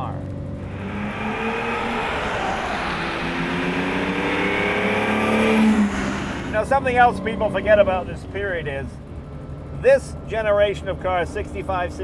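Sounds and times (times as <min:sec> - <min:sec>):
car engine accelerating: 0:00.4 - 0:08.4.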